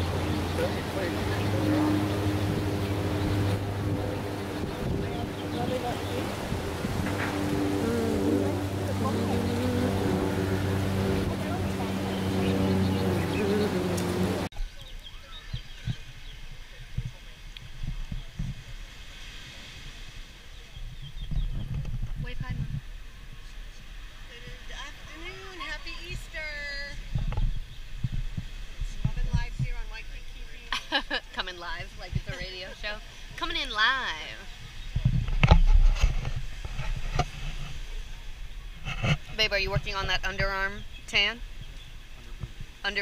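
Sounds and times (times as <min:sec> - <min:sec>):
low mechanical hum: 0:00.0 - 0:14.5
wind bumps on microphone: 0:00.0 - 0:14.5, 0:15.3 - 0:30.6, 0:31.3 - 0:43.0
faint distant voices: 0:00.0 - 0:21.5.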